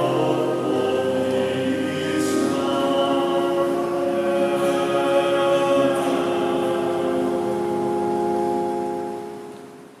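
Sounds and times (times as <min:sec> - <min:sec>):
keyboard holding sustained chord: 0:00.0 - 0:10.0.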